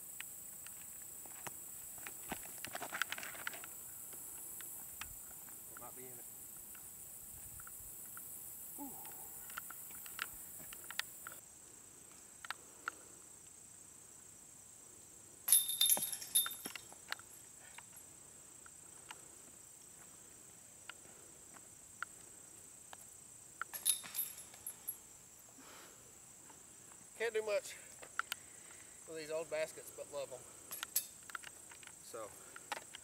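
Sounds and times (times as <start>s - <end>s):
insects droning: 0.0s - 33.0s
discs striking basket chains: 15.5s - 17.0s, 23.7s - 25.1s, 30.7s - 31.3s.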